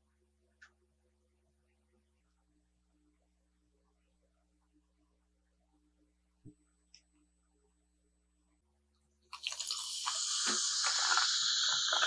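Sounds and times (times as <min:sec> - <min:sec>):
soda fizzing in a glass: 0:09.3 - 0:12.0.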